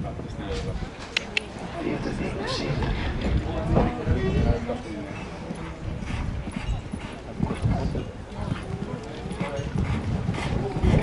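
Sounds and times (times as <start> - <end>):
horse hoofbeats on sand: 3.3 - 11.0.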